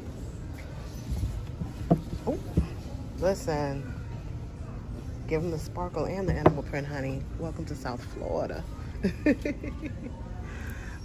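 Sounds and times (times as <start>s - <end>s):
soft dull knocks and handling: 0.6s - 2.9s.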